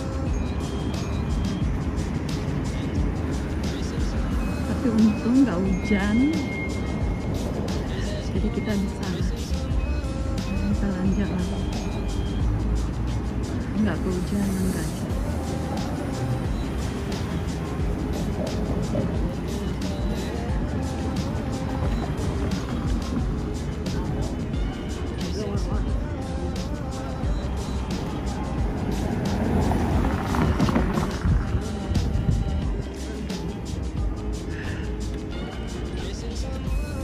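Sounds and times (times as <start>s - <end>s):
background music: 0.0s - 37.0s
city street traffic: 0.0s - 37.0s
vehicle passing: 11.3s - 33.2s.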